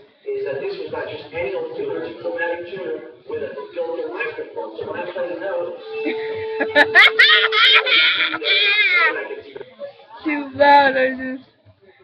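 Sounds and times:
high-pitched shrieking laughter: 0:06.1 - 0:09.2.

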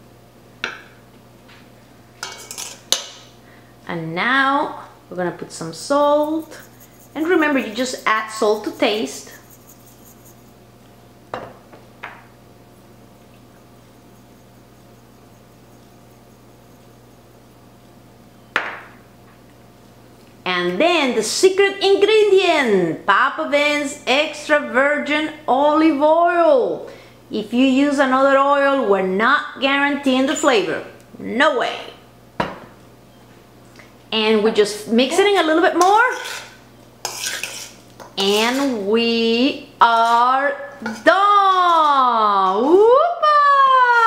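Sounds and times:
metal spoon clinking bowl: 0:06.0 - 0:10.5, 0:13.5 - 0:17.3.

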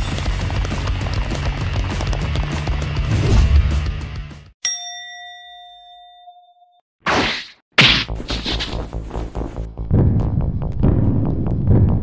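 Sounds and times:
bell-like ding: 0:04.6 - 0:06.8.

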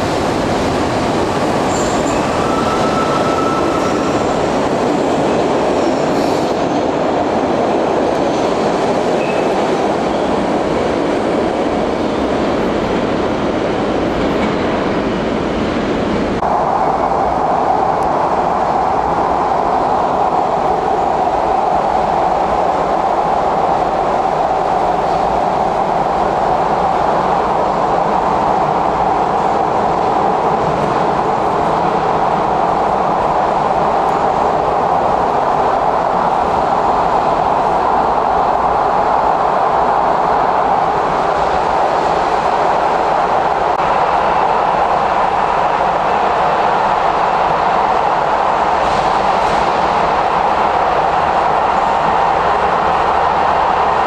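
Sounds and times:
subway train rumbling past: 0:00.0 - 0:54.0
train interior running drone: 0:00.0 - 0:54.0
high squeal of train wheels: 0:01.4 - 0:04.8, 0:05.7 - 0:07.0, 0:09.1 - 0:10.5.

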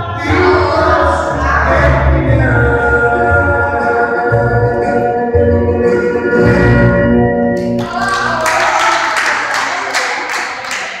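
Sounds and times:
people applauding: 0:07.6 - 0:11.0.

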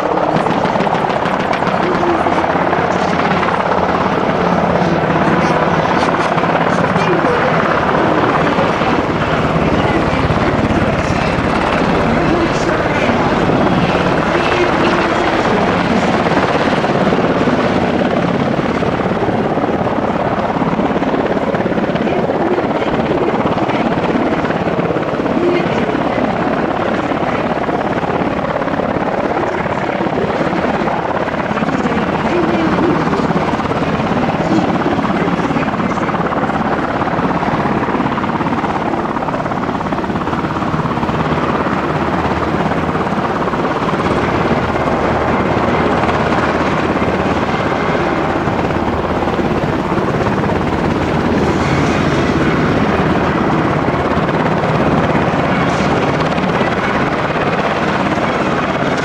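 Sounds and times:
helicopter engines and rotors: 0:00.0 - 0:59.0.

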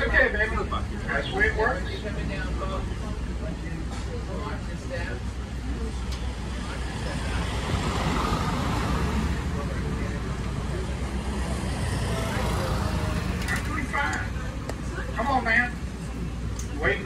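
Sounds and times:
faint voices: 0:00.0 - 0:17.0.

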